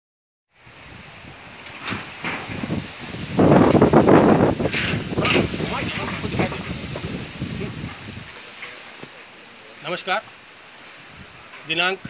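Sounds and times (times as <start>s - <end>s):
wind buffeting microphone: 0.6s - 9.2s, 10.2s - 12.0s.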